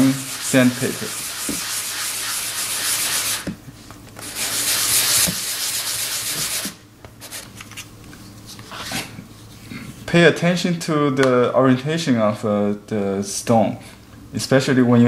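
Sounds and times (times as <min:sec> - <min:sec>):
stone rubbed on sandpaper: 0:00.0 - 0:03.4, 0:04.2 - 0:07.4.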